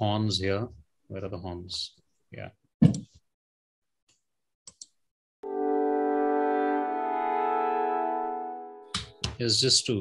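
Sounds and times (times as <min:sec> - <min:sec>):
horns holding a chord: 0:05.4 - 0:09.2.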